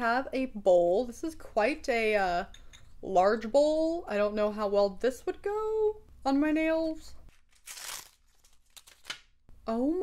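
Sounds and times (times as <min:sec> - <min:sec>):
plastic packet crinkling: 0:07.3 - 0:09.4.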